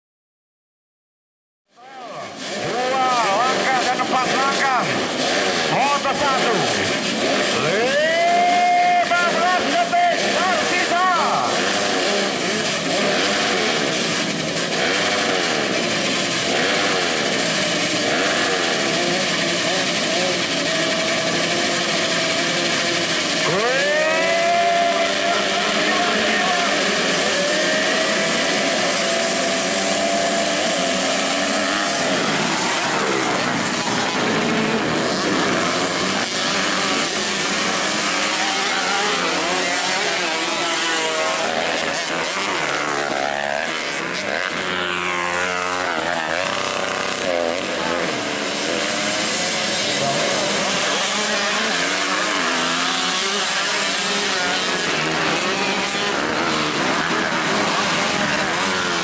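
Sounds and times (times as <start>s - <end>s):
motocross bikes revving: 1.8s - 59.0s.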